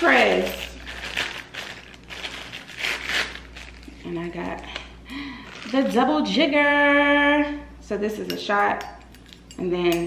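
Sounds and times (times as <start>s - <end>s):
plastic wrapping crinkling: 0.0s - 4.5s, 5.3s - 6.0s.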